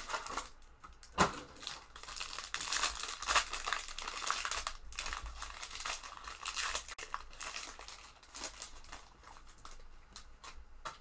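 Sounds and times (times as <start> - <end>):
foil wrapper crinkling and tearing: 0.0 - 10.6.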